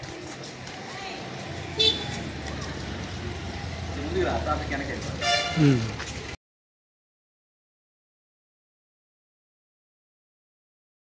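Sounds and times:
vehicle horns honking: 1.7s - 2.3s, 5.1s - 5.9s.

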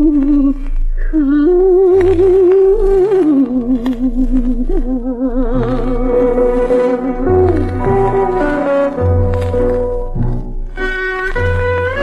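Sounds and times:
old record vocal melody with vibrato: 0.0s - 10.3s.

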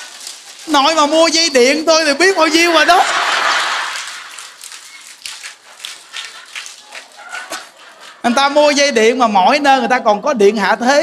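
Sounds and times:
faint rustles and clicks: 0.0s - 1.0s
audience laughing: 2.6s - 4.7s.

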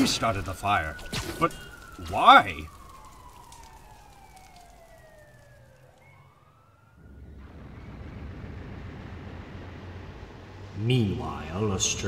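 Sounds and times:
siren wailing: 0.0s - 12.0s.

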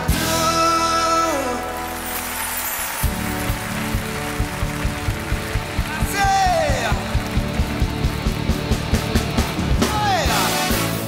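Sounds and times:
live pop band with brass: 0.0s - 11.0s
steady drum beat: 3.0s - 11.0s.

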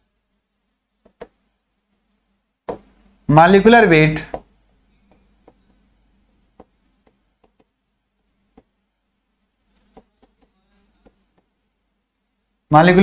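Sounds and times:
chalk tapping on chalkboard: 1.0s - 1.4s, 4.2s - 8.8s, 9.7s - 11.6s.

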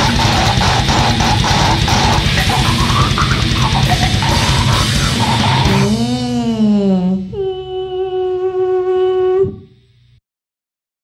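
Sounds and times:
voice holding long steady note: 0.0s - 10.0s
lower wavering vocal note: 5.6s - 9.8s.

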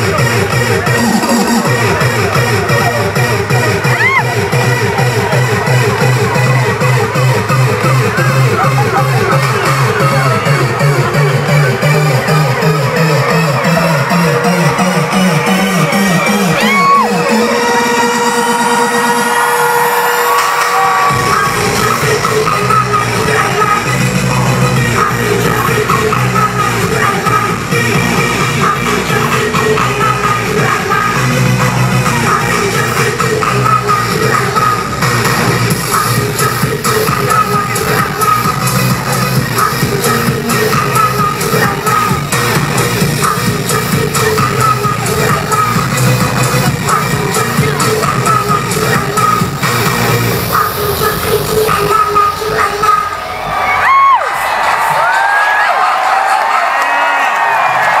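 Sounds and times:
electronic rap music: 0.0s - 58.0s
crowd cheering and whistling: 3.7s - 6.4s, 13.5s - 22.1s, 52.8s - 58.0s.

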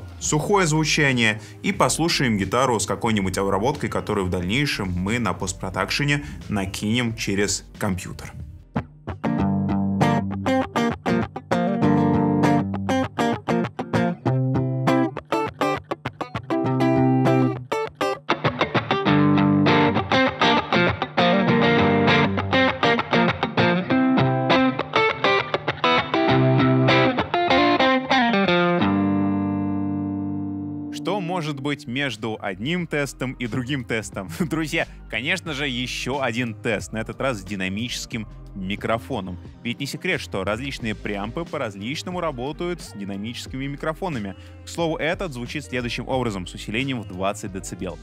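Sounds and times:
electric guitar strummed chords: 8.6s - 32.0s.

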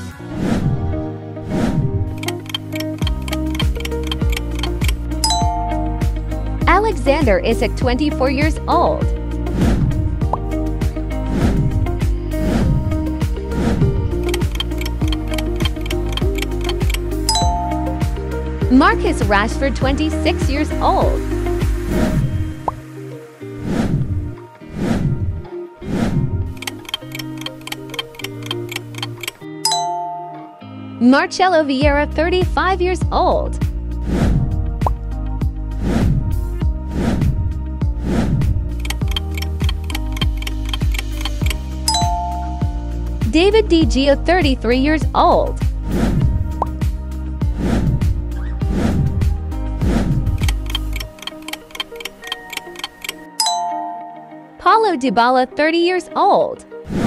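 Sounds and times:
background music: 0.0s - 57.0s
clock ticks: 2.2s - 5.5s, 14.2s - 17.7s, 26.6s - 29.4s, 38.7s - 42.2s, 50.4s - 53.3s
bright chime: 5.2s - 6.0s, 29.6s - 30.4s, 41.9s - 42.7s, 53.4s - 54.4s.

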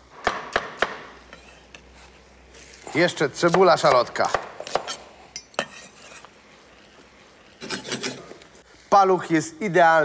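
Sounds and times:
knife scraping on board: 1.2s - 6.4s, 7.6s - 8.4s.

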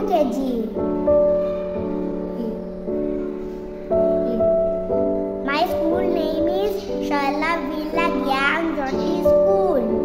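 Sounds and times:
young child singing: 0.0s - 3.4s, 4.0s - 4.7s, 5.4s - 10.0s
instrumental music with held notes: 0.0s - 10.0s.

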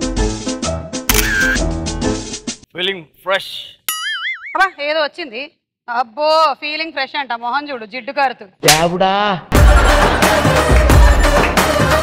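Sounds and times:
camera shutter sound effect: 1.1s - 1.6s
music with steady beat: 9.5s - 12.0s.

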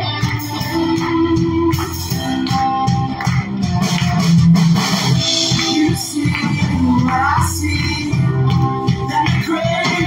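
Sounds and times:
bass guitar: 0.0s - 10.0s
guitar: 0.0s - 10.0s
keyboard: 0.0s - 10.0s
steady drum beat: 0.0s - 10.0s.

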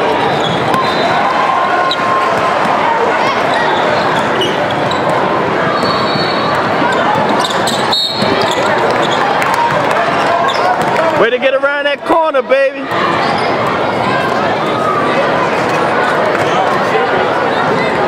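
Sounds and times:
crowd and player noise: 0.0s - 18.0s.

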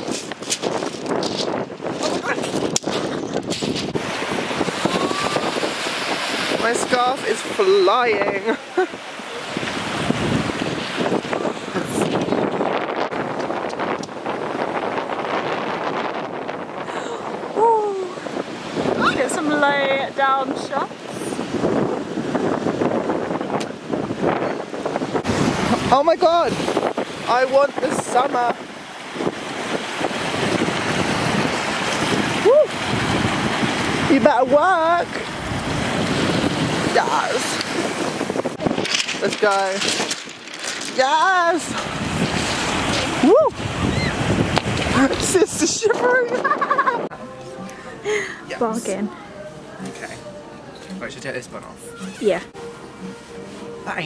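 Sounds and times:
waves washing up pebble beach: 0.0s - 46.7s
wind buffeting microphone: 0.0s - 53.2s.

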